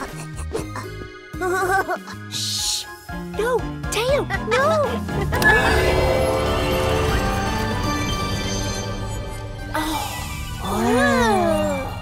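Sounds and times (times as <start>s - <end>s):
light background music: 0.0s - 12.0s.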